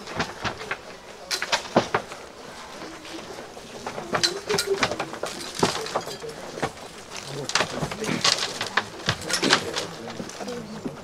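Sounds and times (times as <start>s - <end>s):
low murmured voices: 0.0s - 11.0s.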